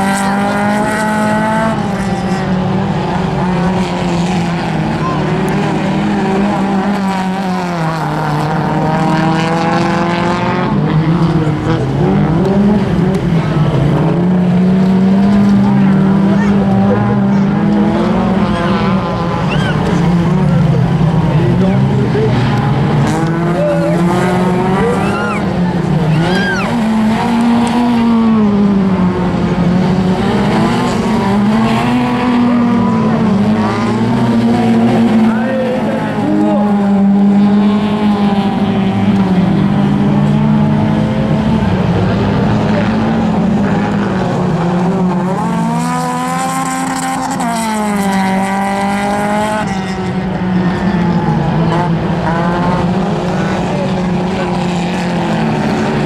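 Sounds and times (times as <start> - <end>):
racing car engines revving: 0.0 - 56.0.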